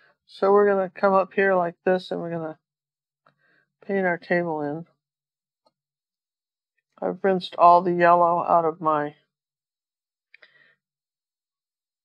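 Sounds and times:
woman's voice: 0.3s - 2.6s, 3.9s - 4.9s, 7.0s - 9.2s.

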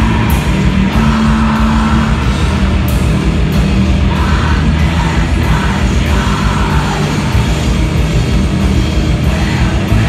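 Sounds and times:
heavy distorted guitars and bass: 0.0s - 10.0s.

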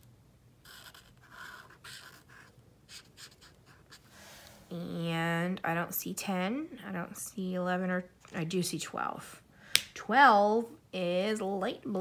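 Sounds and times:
marker rubbing on paper: 0.6s - 4.4s.

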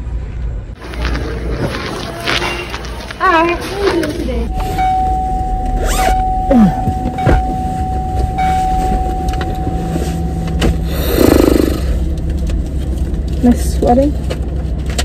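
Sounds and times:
car cabin hum: 4.6s - 11.1s.

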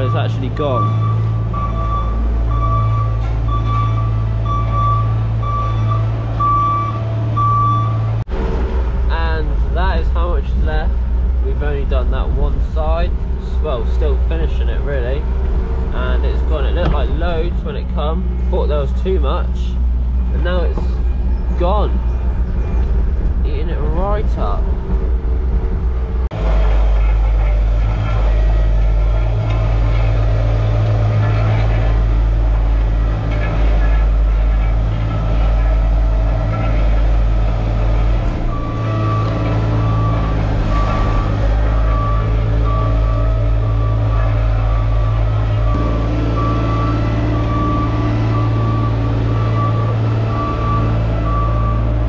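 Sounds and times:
reversing alarm beeping: 0.0s - 8.2s, 34.9s - 52.0s
diesel engines running: 0.0s - 52.0s
vibratory roller compacting: 19.7s - 52.0s.

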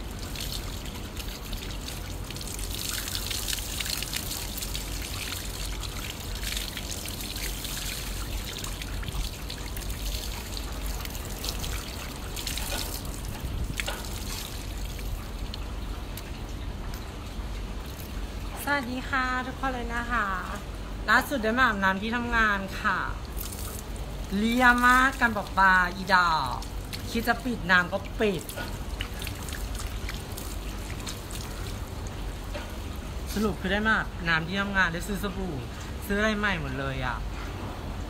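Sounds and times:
water from garden hose splashing: 0.0s - 18.8s, 23.1s - 37.0s.

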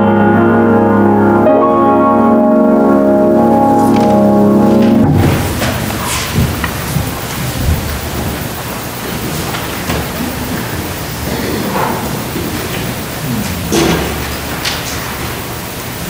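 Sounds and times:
congregation rustling and shuffling: 2.6s - 16.0s
small knocks: 5.1s - 8.5s
faint voices: 5.2s - 16.0s.

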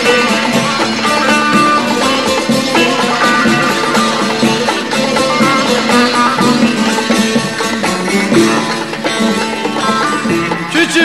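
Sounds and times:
plucked string instruments melody: 0.0s - 11.0s.

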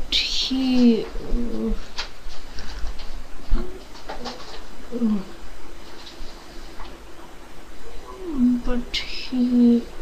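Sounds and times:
child humming hesitantly: 4.9s - 5.4s.

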